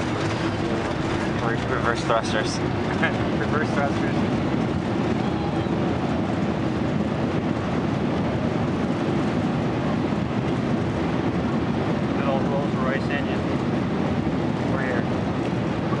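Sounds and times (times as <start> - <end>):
airliner cabin roar: 0.0 - 16.0.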